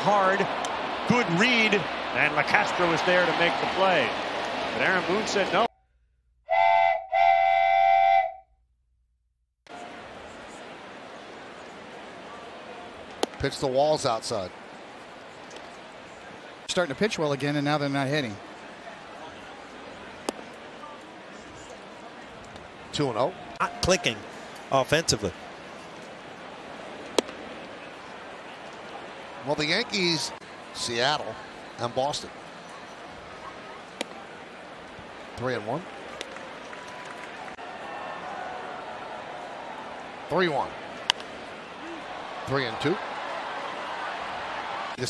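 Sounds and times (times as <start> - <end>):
crowd noise: 0.0 - 5.7, 9.7 - 45.0
whistle blasts: 6.5 - 8.5.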